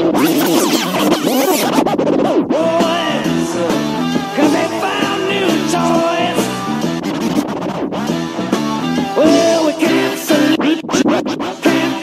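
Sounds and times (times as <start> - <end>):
music: 0.0 - 12.0
record scratching: 0.0 - 12.0.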